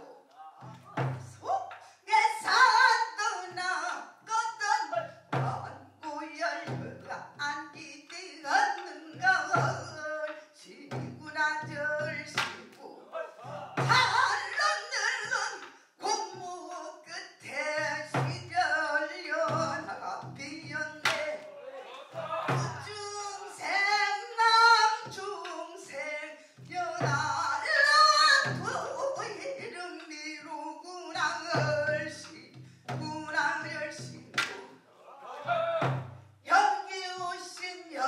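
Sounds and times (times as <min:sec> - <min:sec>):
woman singing with wavering notes: 0:01.4 - 0:04.9, 0:22.8 - 0:34.3.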